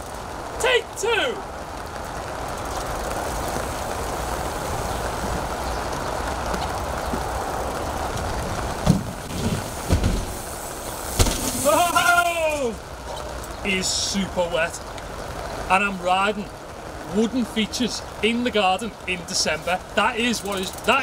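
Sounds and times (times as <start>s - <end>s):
steady outdoor noise: 0.0s - 21.0s
man shouting: 0.6s - 1.5s, 11.6s - 12.8s
bike tyres knocking on wooden ramp: 8.1s - 10.5s, 11.1s - 11.6s.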